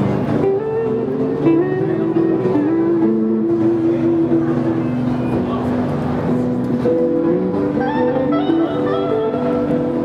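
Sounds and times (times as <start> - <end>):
electric guitar with delay: 0.0 - 10.0.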